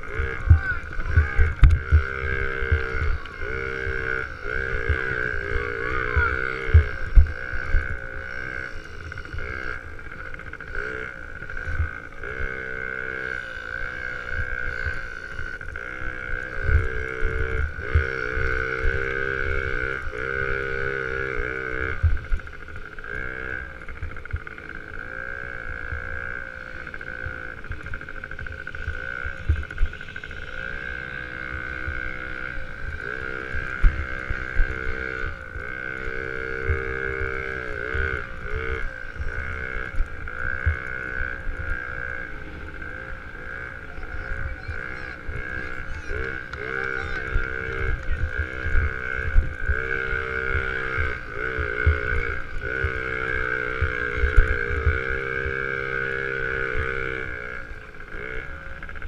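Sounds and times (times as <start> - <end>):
dirt bike engine revving: 0.0 - 59.0
high whine: 0.0 - 59.0
wind rumble: 0.0 - 59.0.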